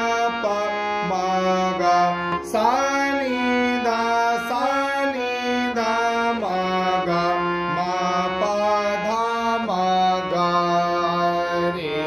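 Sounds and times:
harmonium melody: 0:00.0 - 0:12.0
person singing: 0:00.0 - 0:12.0.

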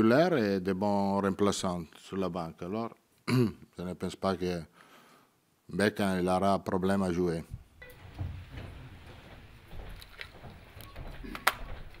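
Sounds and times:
shuffling: 0:07.4 - 0:12.0
chair movement: 0:07.6 - 0:12.0.

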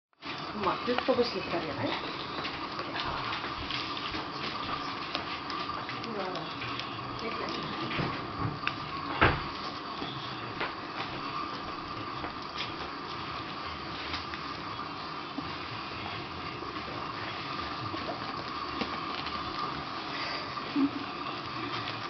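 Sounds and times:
puppies lapping and slurping: 0:00.3 - 0:22.0.

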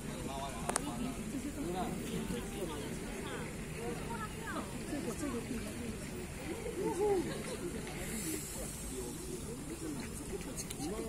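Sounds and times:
people chatting in background: 0:00.0 - 0:11.0.

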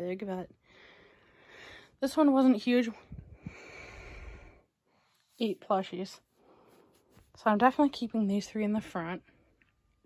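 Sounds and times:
breath into microphone: 0:03.1 - 0:05.4.

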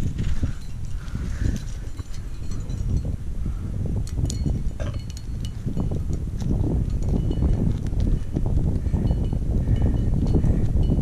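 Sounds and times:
wind rumble on camera: 0:00.0 - 0:11.0
climbing gear clinking: 0:00.2 - 0:03.1, 0:04.0 - 0:09.4
person breathing: 0:00.3 - 0:02.5.

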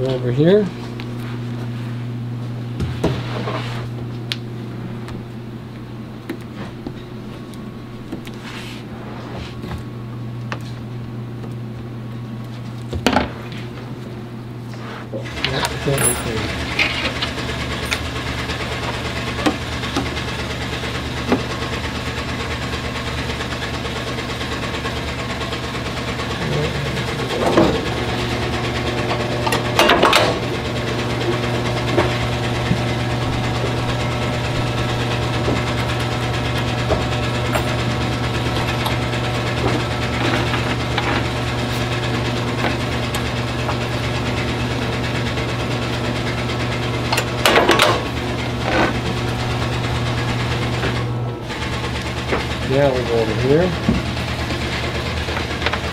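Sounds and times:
workshop machinery humming: 0:00.0 - 0:55.9.

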